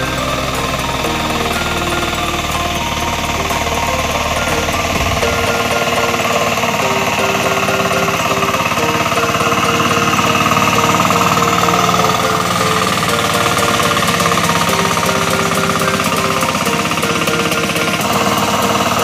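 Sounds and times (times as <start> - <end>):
hand tractor engine running: 0.0 - 19.0
wheels churning through mud: 0.0 - 19.0.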